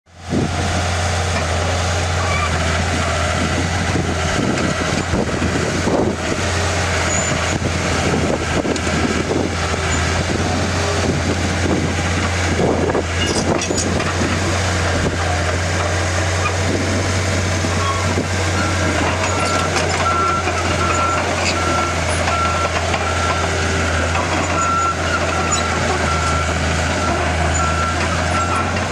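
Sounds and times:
diesel bulldozer engine running: 0.1 - 28.9
steel tracks clanking: 6.2 - 16.7, 17.3 - 28.9.

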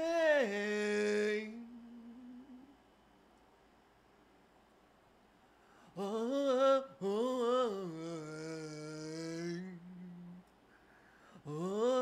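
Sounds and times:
man singing one note: 0.0 - 2.7, 6.0 - 10.4, 11.4 - 12.0.

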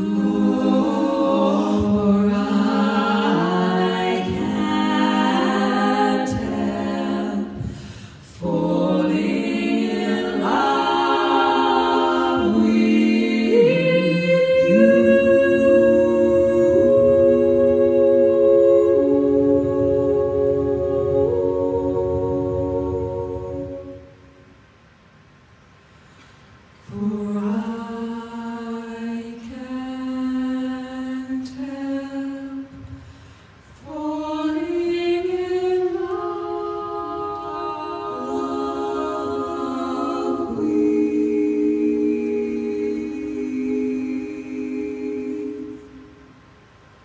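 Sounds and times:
women singing in harmony: 0.0 - 24.4, 26.8 - 33.0, 33.6 - 46.4.

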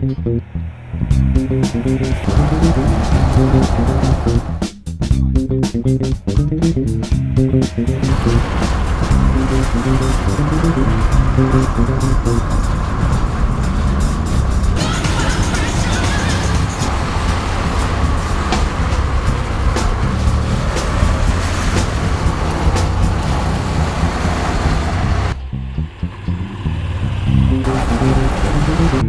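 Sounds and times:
background music: 0.0 - 12.6, 14.0 - 25.0, 27.5 - 29.0
wind noise: 0.0 - 15.5, 16.5 - 29.0
scooter engine running: 0.6 - 4.6, 7.4 - 29.0.

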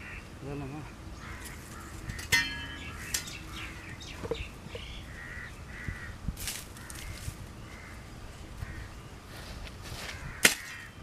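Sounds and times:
crow cawing: 1.2 - 3.1, 5.0 - 6.2, 6.8 - 8.9, 10.0 - 11.0.

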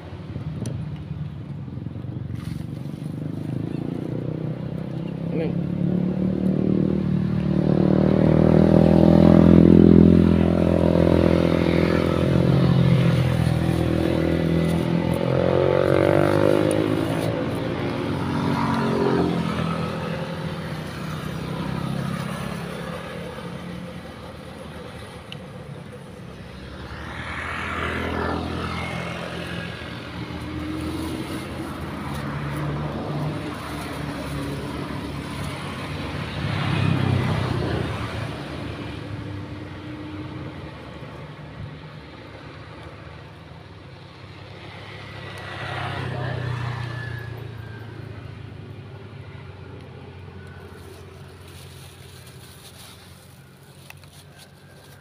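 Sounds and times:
vehicles passing on road: 0.0 - 55.0.

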